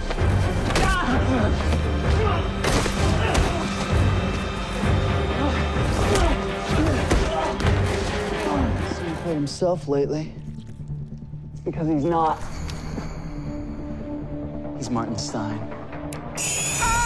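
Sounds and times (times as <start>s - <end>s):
dramatic background music: 0.0s - 17.0s.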